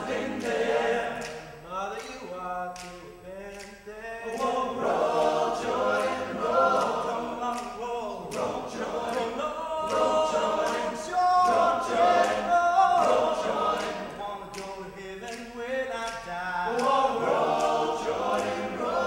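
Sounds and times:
male a cappella group singing: 0.0s - 19.0s.

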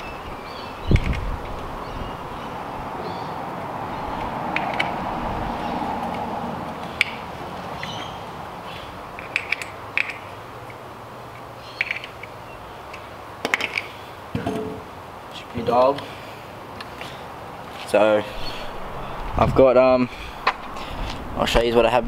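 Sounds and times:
steady background hiss: 0.0s - 22.0s.

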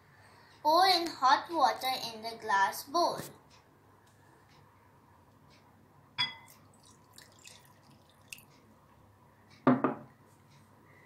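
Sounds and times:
glass clinking: 6.2s - 7.7s
heavy knocks on tabletop: 9.6s - 10.1s.

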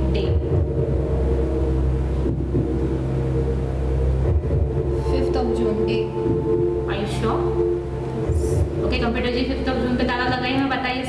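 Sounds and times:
low droning quiz show music: 0.0s - 11.0s.

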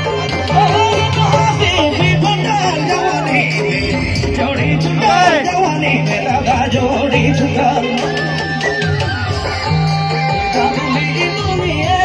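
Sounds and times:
loud amplified band music: 0.0s - 12.0s.

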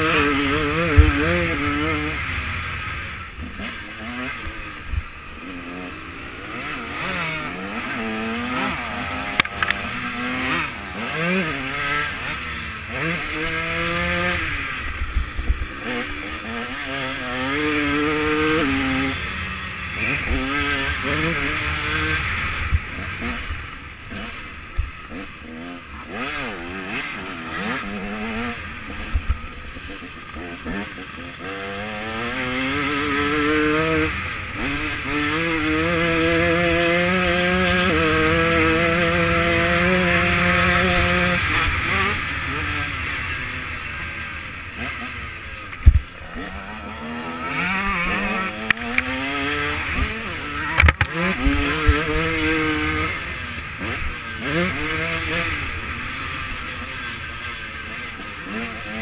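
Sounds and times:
motocross engine revving: 0.0s - 59.0s.

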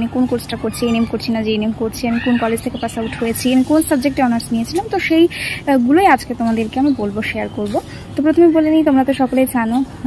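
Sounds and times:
young woman talking: 0.0s - 10.0s.

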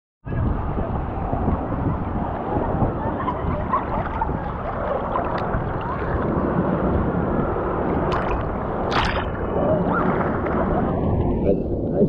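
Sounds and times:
sea water sloshing: 2.6s - 11.4s.

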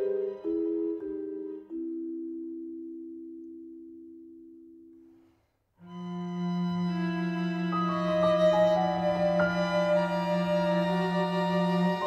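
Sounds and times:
bowed-string chord with low cello: 5.8s - 12.0s.

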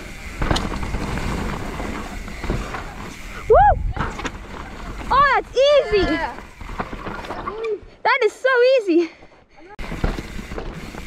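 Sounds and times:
bike knocks and rattles: 0.0s - 7.8s, 9.8s - 11.0s
bike tyres on dirt trail: 0.0s - 11.0s.

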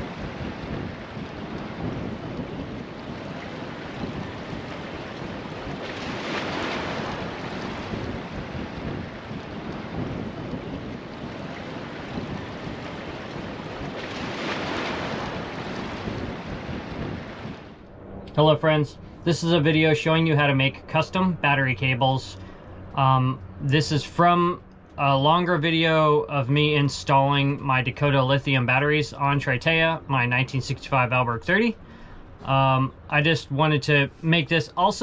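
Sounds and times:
ocean waves breaking: 0.0s - 35.0s.

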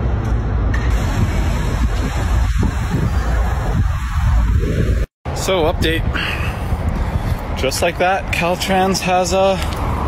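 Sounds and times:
road traffic with low rumble: 0.0s - 10.0s.

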